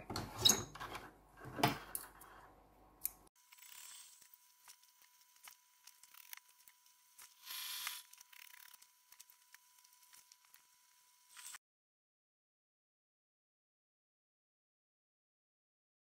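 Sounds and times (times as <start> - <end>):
steam iron hiss: 7.2 - 8.2.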